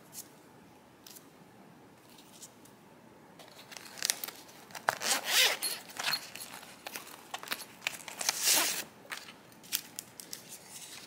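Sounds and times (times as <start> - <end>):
paper and plastic rustling: 3.4 - 11.0
zipper pulls on plastic pouch: 4.8 - 6.2, 8.2 - 8.9.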